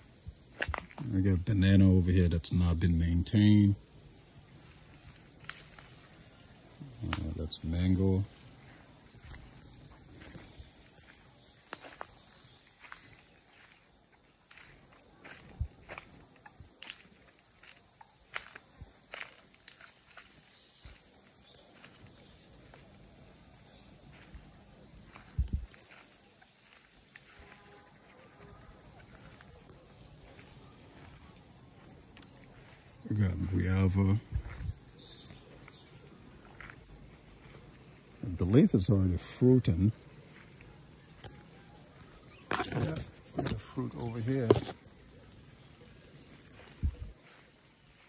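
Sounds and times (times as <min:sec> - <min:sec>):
footsteps crunching on dry ground: 0:00.0 - 0:48.0
insects chirping: 0:00.0 - 0:48.0.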